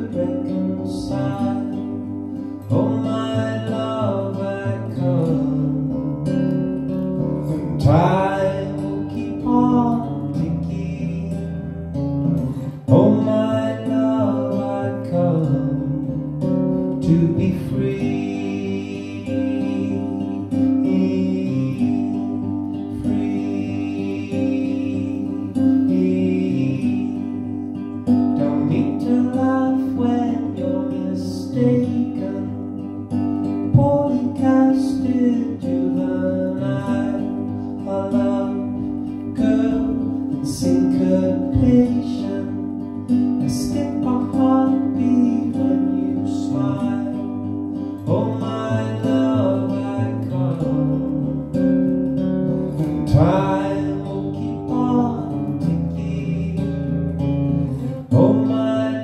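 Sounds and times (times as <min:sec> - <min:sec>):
man singing: 0:00.0 - 0:06.4, 0:07.4 - 0:51.9, 0:52.5 - 0:59.0
acoustic guitar strumming: 0:00.0 - 0:59.0.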